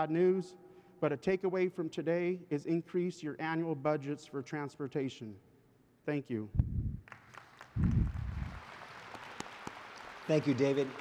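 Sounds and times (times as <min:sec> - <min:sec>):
audience applauding: 0:07.1 - 0:11.0.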